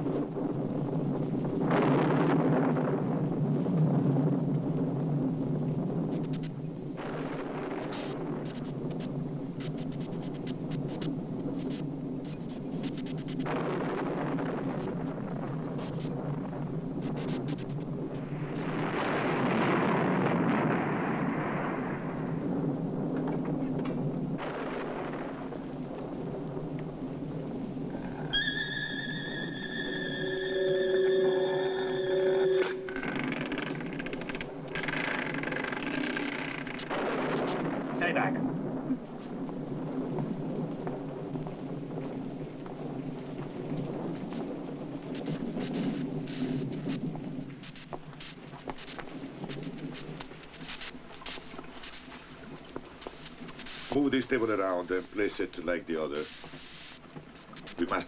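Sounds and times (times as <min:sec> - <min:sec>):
film background score: 0:21.5 - 0:58.0.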